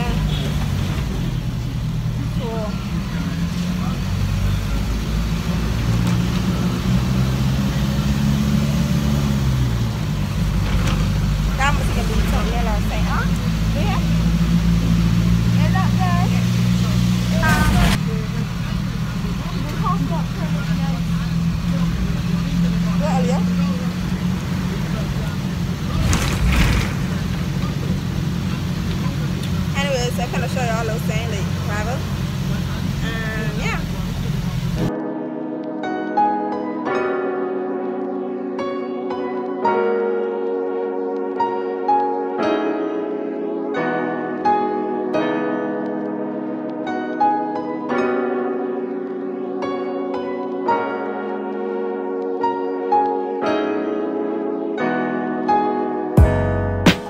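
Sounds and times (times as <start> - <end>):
bus engine droning: 0.0 - 35.0
faint voices: 15.6 - 34.9.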